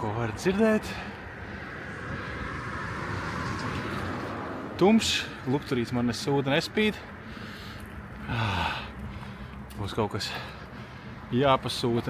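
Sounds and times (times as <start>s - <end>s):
car passing close by: 0.8s - 5.6s.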